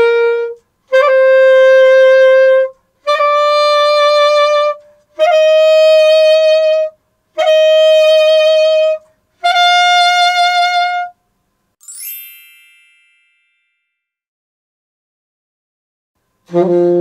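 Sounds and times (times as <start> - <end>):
alto saxophone notes: 0.0 - 11.2, 16.5 - 17.0
bright chime ding: 11.8 - 14.0.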